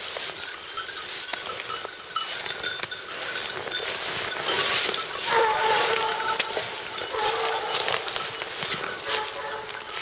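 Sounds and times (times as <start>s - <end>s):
hounds baying: 3.2s - 10.0s.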